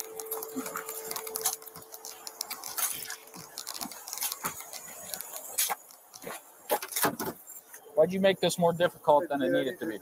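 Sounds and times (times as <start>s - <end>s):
gear rubbing clicks: 0.0s - 7.0s
scratching and rustling: 0.0s - 7.8s
faint steady hum: 0.0s - 10.0s.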